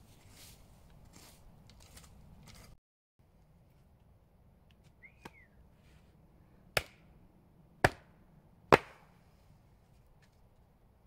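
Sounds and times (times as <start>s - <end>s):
axe chopping firewood: 6.8s - 7.1s, 7.8s - 9.1s.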